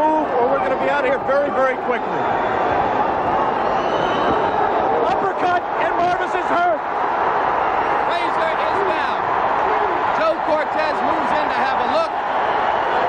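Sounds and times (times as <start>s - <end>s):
arena crowd roaring: 0.0s - 13.0s
men yelling: 4.8s - 12.3s.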